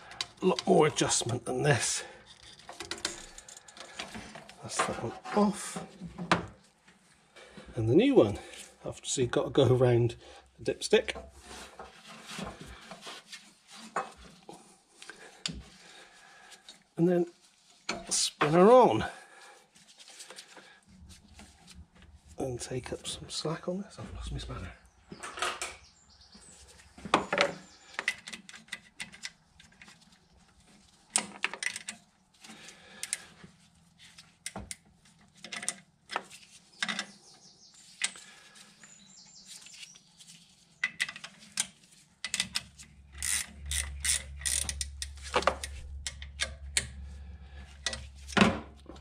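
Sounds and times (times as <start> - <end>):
ratchet clicks: 42.3 - 46.9.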